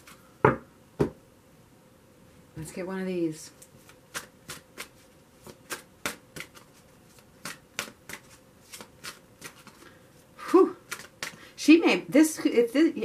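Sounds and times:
cards being shuffled: 0:03.6 - 0:10.0, 0:10.8 - 0:11.4.

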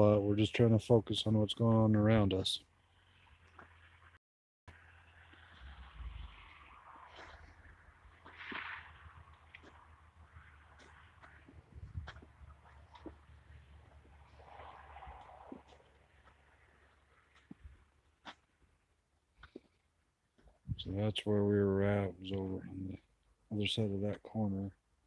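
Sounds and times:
rustle: 0:02.7 - 0:20.7
low rumble: 0:04.0 - 0:17.9.

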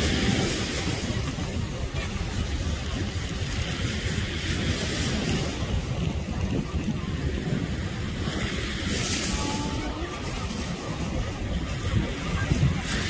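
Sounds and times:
surf hissing: 0:00.0 - 0:13.0
wind buffeting microphone: 0:00.0 - 0:13.0.

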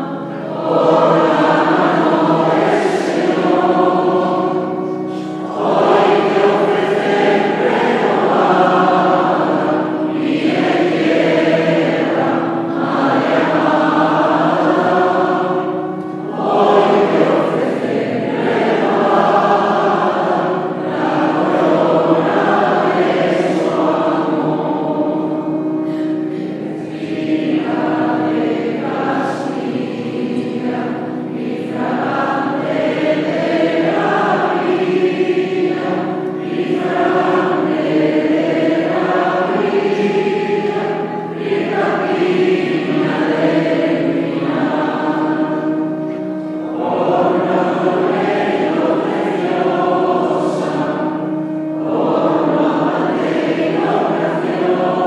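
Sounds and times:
choir singing a hymn: 0:00.0 - 0:55.0.

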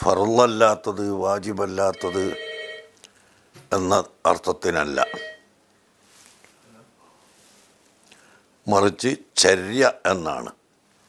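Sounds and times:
man speaking: 0:00.0 - 0:02.4, 0:03.7 - 0:05.4
multi-tone ringing: 0:01.9 - 0:02.9, 0:05.0 - 0:05.5.

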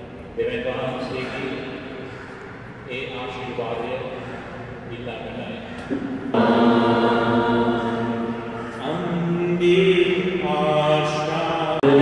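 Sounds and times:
man intoning a prayer: 0:00.4 - 0:01.9, 0:02.8 - 0:05.9, 0:08.6 - 0:12.0.

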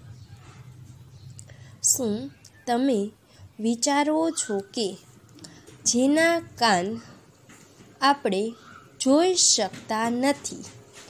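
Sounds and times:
faint low hum: 0:00.0 - 0:11.0
soft breath noise: 0:00.4 - 0:01.9.

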